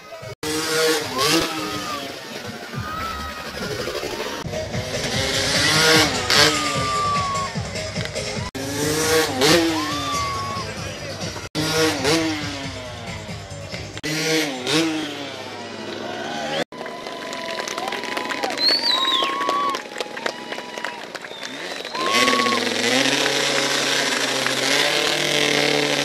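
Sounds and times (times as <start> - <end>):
motorbike engines revving: 0.0 - 17.1, 17.8 - 26.0.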